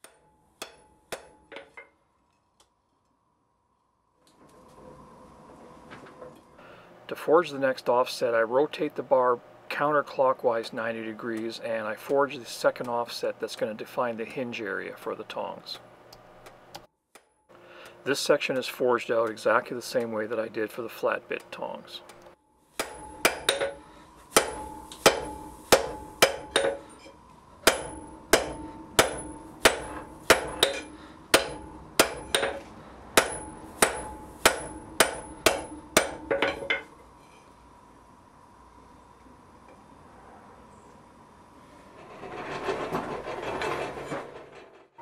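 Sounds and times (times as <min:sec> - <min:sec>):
anvil ringing: 0:00.0 - 0:01.9, 0:22.7 - 0:32.6, 0:33.2 - 0:36.9
hammer striking hot iron on anvil: 0:00.0 - 0:02.0, 0:17.1 - 0:18.0, 0:22.7 - 0:37.0.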